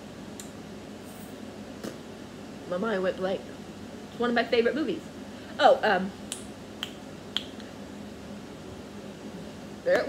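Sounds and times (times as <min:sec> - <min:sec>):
finger snap: 0:00.4 - 0:00.6, 0:06.3 - 0:07.7.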